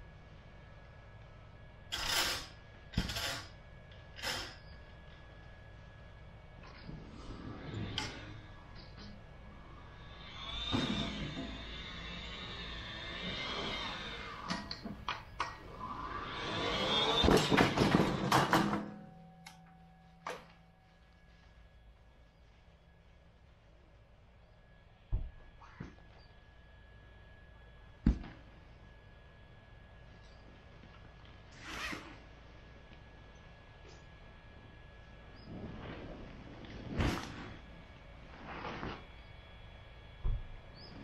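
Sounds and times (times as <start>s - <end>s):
steady background noise: 0.0s - 41.0s.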